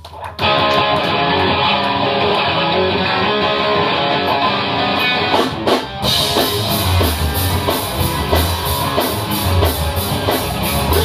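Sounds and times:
electric guitar chords: 0.4 - 11.0
rock band playing: 0.4 - 11.0.

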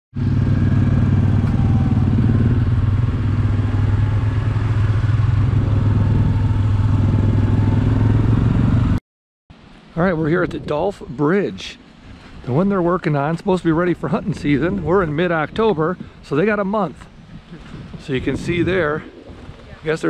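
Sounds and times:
atv engine running: 0.2 - 9.0.

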